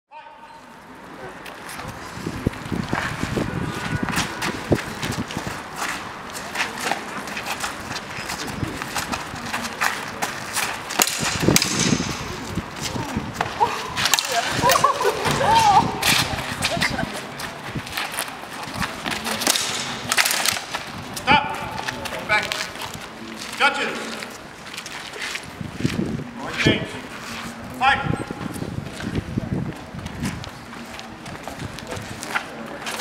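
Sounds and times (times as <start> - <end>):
quick footsteps: 1.4 - 27.7, 28.3 - 33.0.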